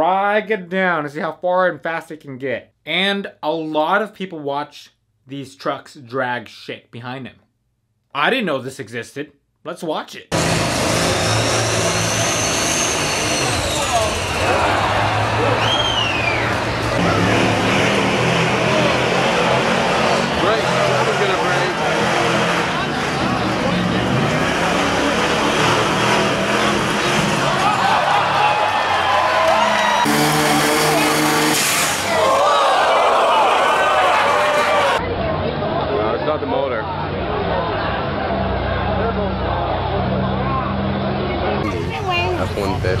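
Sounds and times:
diesel truck engines under load: 10.3s - 28.8s, 37.0s - 43.0s
crowd noise and voices: 10.3s - 43.0s.

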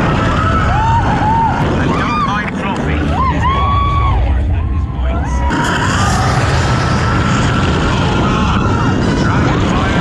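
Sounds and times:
coaster car rumbling on track: 0.0s - 10.0s
loud rushing hiss: 5.5s - 10.0s.

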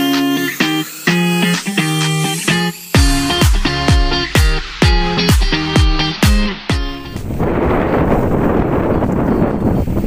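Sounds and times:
music: 0.0s - 8.3s
wind buffeting microphone: 6.8s - 10.0s.

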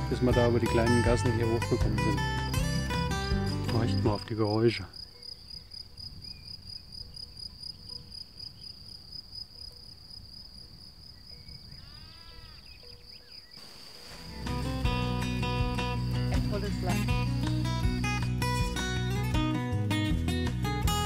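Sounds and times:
guitar music: 0.0s - 4.4s, 14.2s - 21.0s
crickets chirping: 2.2s - 18.8s.

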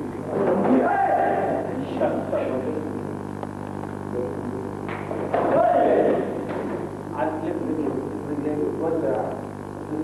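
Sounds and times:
man shouting: 0.7s - 1.6s, 5.4s - 6.3s.

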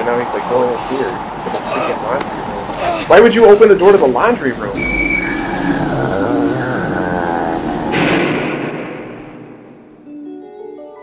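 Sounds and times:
creature snarling cries: 5.1s - 8.4s
struggle noises: 5.1s - 8.5s
loud hit: 7.8s - 10.1s.

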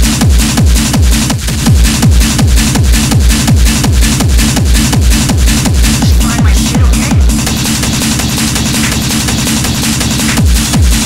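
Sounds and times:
stuttering synth riff: 0.0s - 11.0s.

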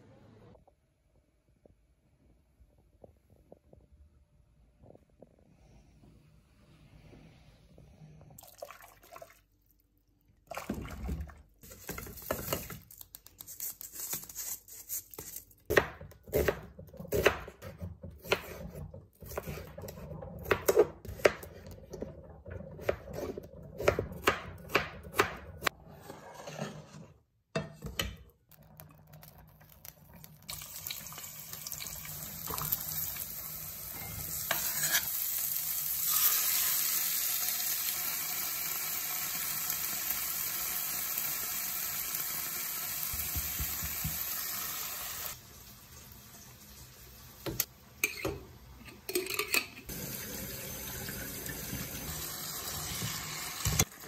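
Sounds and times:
onions sizzling in oil: 30.5s - 47.8s, 49.9s - 54.0s.

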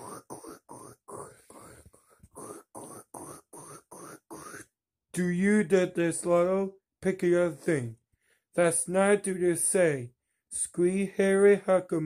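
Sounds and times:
person making breathy noises: 0.0s - 4.7s.

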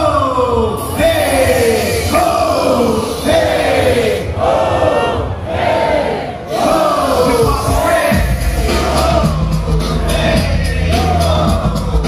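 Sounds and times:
crowd chanting in unison: 1.1s - 12.0s.

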